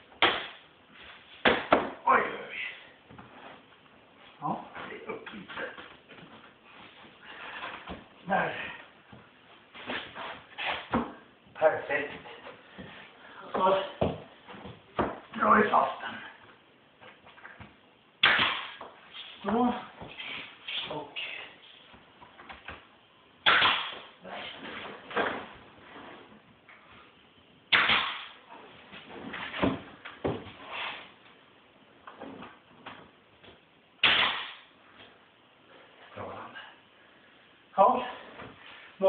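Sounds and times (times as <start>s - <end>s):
nail gun firing: 23.4s - 24.0s, 27.7s - 28.4s, 34.0s - 34.6s.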